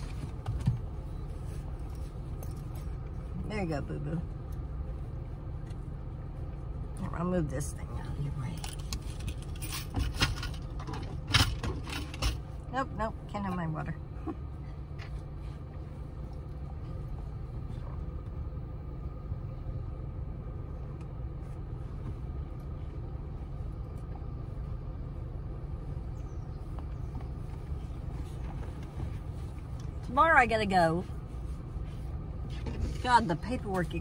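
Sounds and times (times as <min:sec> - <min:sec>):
air conditioning: 0:00.0 - 0:34.0
car running low rumble: 0:00.0 - 0:34.0.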